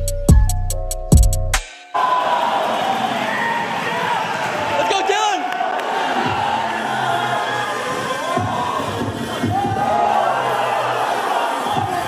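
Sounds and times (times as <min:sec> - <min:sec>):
crowd shouting and cheering: 0:01.6 - 0:12.0.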